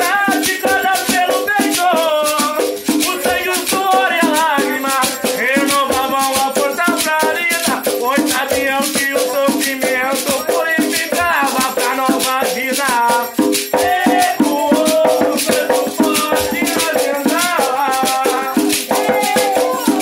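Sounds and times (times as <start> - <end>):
beaded shaker rhythm: 0.0 - 20.0
hand drum: 0.0 - 20.0
person singing devotional song: 0.0 - 20.0.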